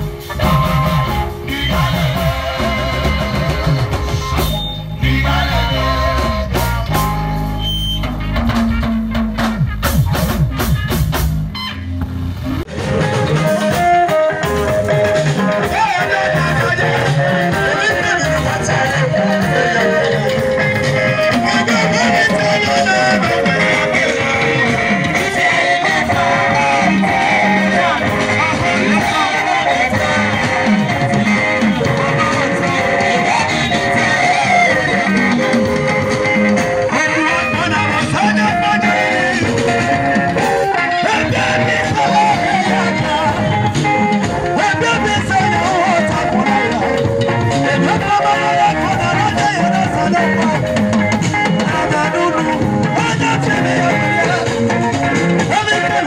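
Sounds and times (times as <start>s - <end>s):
group of singers: 0.0s - 7.8s, 12.8s - 56.0s
live gospel band music: 0.0s - 56.0s
quick drum strikes: 8.0s - 15.8s.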